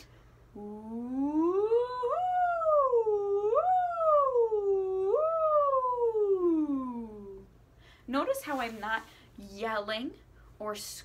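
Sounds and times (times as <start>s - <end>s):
woman singing vocal siren glide: 0.6s - 7.5s.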